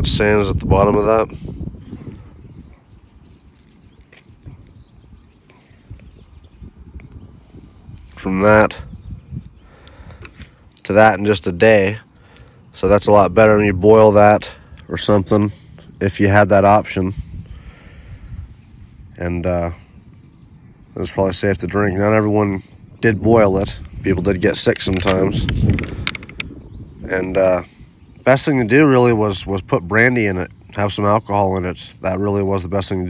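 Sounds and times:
wind rumble on microphone: 0.0 - 33.0
man speaking: 12.8 - 17.2.

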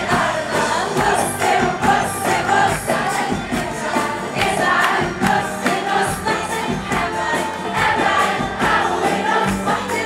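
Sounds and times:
live pop band with singing: 0.0 - 10.0.

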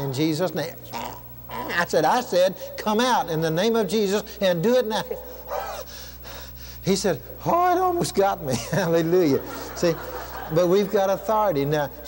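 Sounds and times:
man gasping: 5.7 - 6.8.

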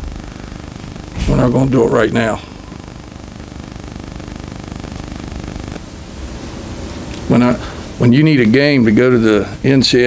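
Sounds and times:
low hum: 0.0 - 9.6
even hiss: 0.0 - 10.0.

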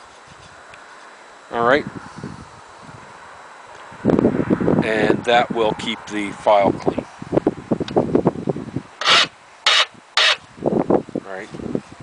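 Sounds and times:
metal file rasping: 9.0 - 10.4.

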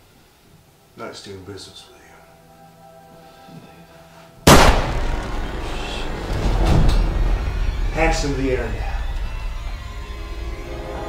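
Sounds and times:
film score: 0.8 - 11.0
gunshot: 4.5 - 7.2.

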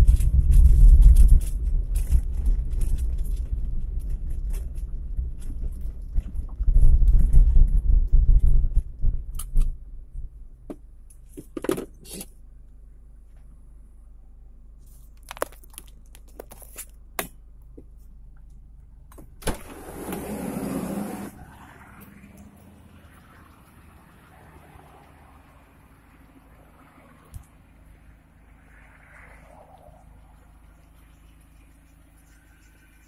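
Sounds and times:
low steady hum: 0.0 - 20.1.

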